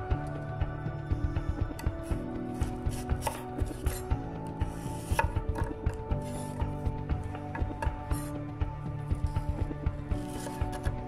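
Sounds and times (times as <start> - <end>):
knife slicing celery: 2.5 - 4.1, 4.7 - 6.6, 10.2 - 11.0.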